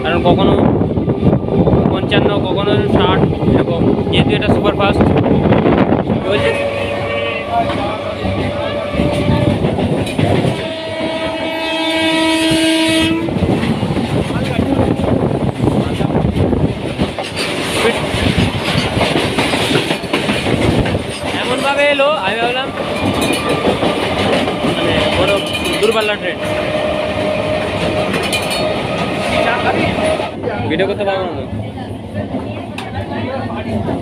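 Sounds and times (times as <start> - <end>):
freight train clattering past: 0.0 - 34.0
train horn: 6.2 - 13.4, 25.0 - 28.8.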